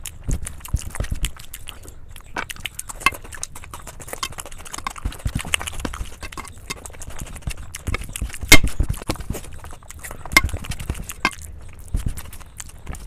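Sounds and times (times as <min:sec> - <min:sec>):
fingers squishing food on steel plate: 0:00.0 - 0:13.0
wet mouth clicks while chewing: 0:00.0 - 0:13.0.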